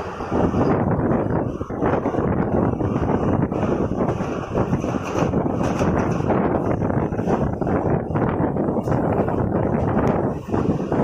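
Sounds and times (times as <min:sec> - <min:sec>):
train wheels rumbling on rails: 0:00.0 - 0:11.0
wind buffeting microphone: 0:00.0 - 0:11.0.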